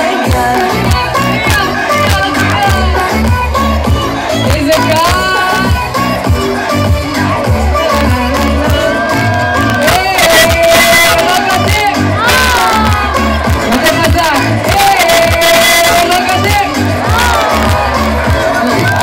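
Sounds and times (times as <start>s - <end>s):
person singing over pa: 0.0s - 4.0s, 6.6s - 19.0s
crowd cheering: 0.0s - 19.0s
live concert music with bass beat: 0.0s - 19.0s.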